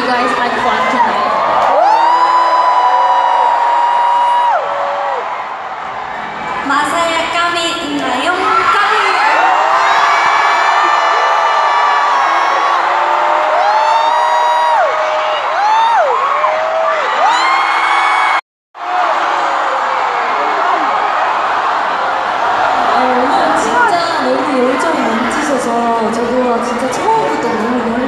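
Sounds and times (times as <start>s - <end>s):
crowd screaming and cheering: 0.0s - 7.2s, 8.0s - 28.0s.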